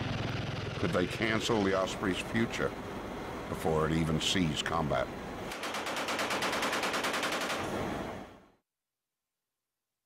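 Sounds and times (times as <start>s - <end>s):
machine gun firing burst: 5.6s - 7.6s.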